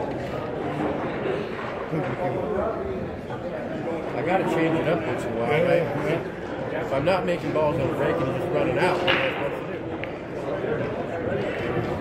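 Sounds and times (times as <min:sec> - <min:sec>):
murmur of voices in a hall: 0:00.0 - 0:12.0.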